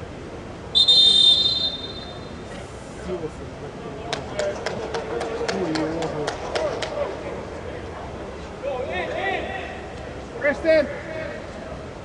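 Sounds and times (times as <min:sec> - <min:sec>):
distant players' voices: 0:00.0 - 0:12.0
pea whistle blast: 0:00.7 - 0:02.4.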